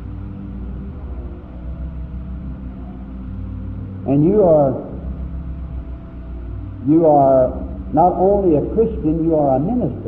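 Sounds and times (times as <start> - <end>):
faint sustained tones: 0.0 - 10.0
low hum: 0.0 - 10.0.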